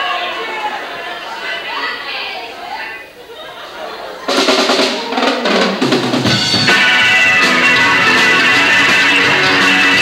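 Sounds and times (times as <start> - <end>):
rock band with electric guitar: 4.2 - 10.0
rock drum fill: 4.3 - 10.0.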